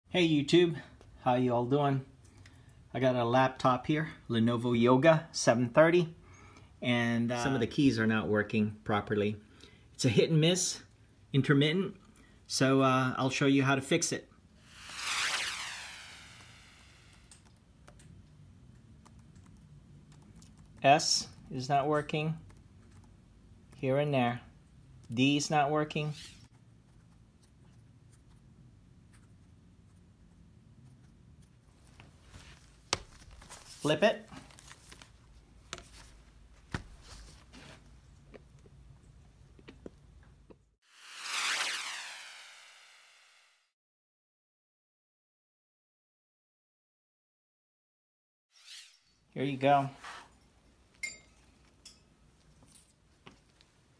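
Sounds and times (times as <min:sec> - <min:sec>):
electronic swoosh effect: 0:14.6 - 0:17.3, 0:40.8 - 0:43.7
whoosh: 0:14.6 - 0:17.3, 0:40.9 - 0:43.7.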